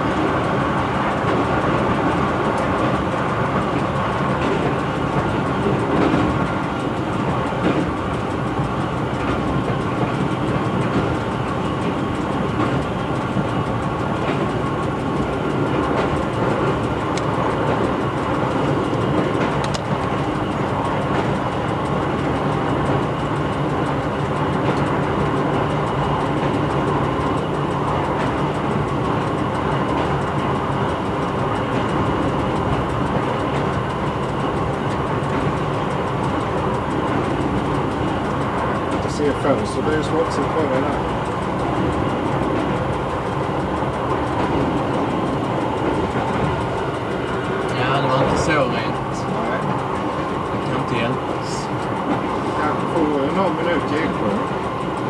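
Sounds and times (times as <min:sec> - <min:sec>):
faint track clicks: 0:00.0 - 0:55.0
railcar engine drone: 0:00.0 - 0:55.0
wheels rumbling on rails: 0:00.0 - 0:55.0.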